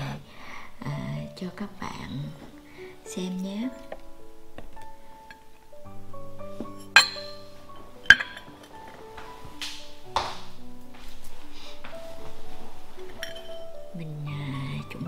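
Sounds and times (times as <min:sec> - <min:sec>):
background music: 0:00.0 - 0:15.0
ceramic bowl clinking on plate: 0:06.7 - 0:08.8, 0:13.1 - 0:13.7.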